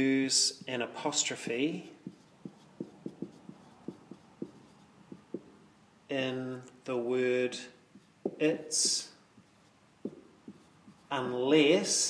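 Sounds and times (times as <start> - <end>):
marker squeaking on whiteboard: 1.7 - 5.7, 7.9 - 11.3.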